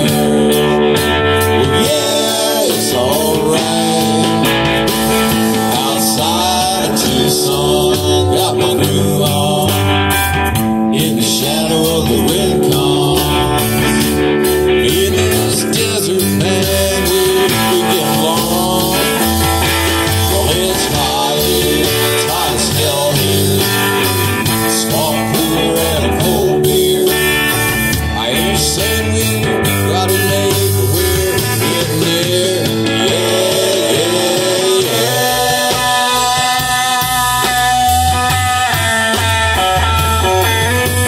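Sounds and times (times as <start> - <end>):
country rock band playing: 0.0 - 41.0
lead guitar bending notes: 0.0 - 41.0.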